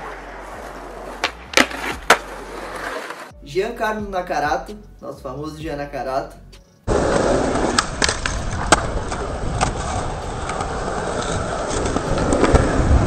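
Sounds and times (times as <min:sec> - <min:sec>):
skateboard wheels rolling on pavement: 0:00.0 - 0:03.3, 0:06.9 - 0:13.0
skateboard clacks: 0:01.1 - 0:03.2, 0:06.9 - 0:13.0.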